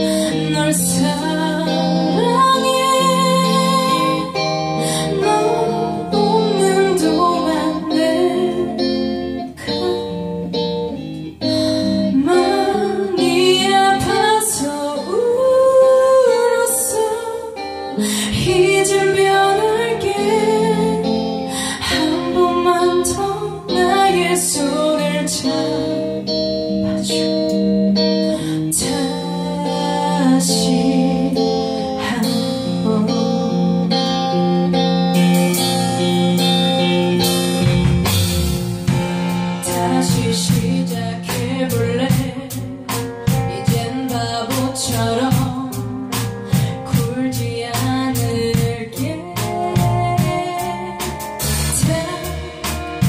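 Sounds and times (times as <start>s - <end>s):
woman singing: 0.0s - 38.2s, 39.6s - 53.0s
bass guitar: 0.0s - 53.0s
electric guitars: 0.0s - 53.0s
drum kit: 34.8s - 53.0s.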